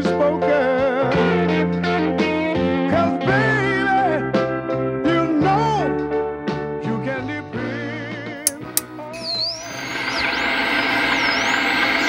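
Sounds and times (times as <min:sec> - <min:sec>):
sharp clicks: 0:08.5 - 0:12.0.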